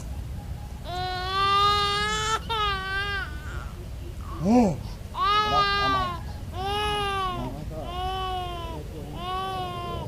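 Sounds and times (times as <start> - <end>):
long wailing cry: 5.2 - 10.0.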